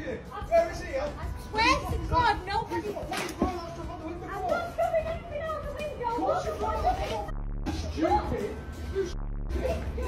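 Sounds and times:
two people arguing: 0.0 - 10.0.

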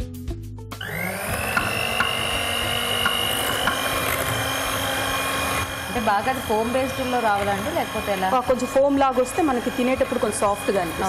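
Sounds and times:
electric hand mixer whirring: 0.8 - 11.0
beaters knocking on bowl: 1.4 - 4.5.

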